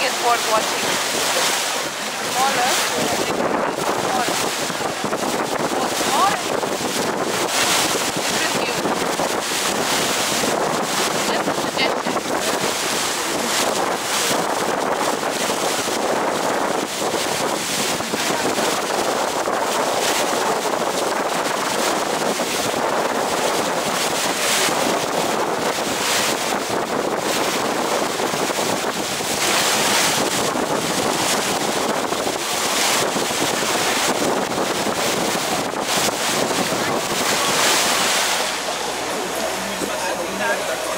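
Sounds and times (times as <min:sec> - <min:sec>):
water rushing past boat hull: 0:00.0 - 0:40.9
wind buffeting microphone: 0:00.0 - 0:40.9.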